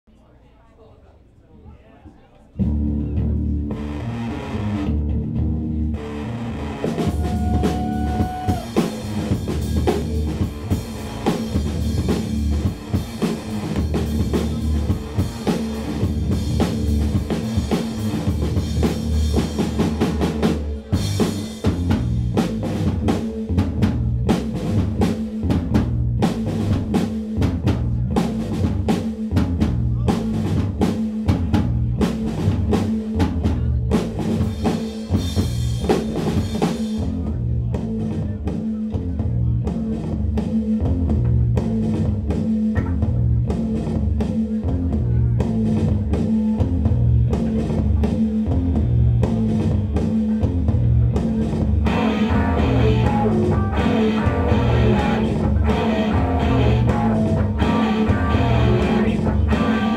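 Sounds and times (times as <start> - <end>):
distorted guitar: 2.6 - 28.8, 42.7 - 43.5, 50.6 - 59.9
drum kit beat: 2.6 - 59.9
low bass notes: 2.6 - 59.9.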